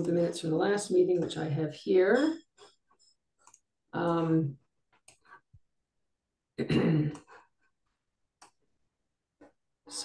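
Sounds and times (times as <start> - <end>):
person clearing throat: 6.6 - 7.3.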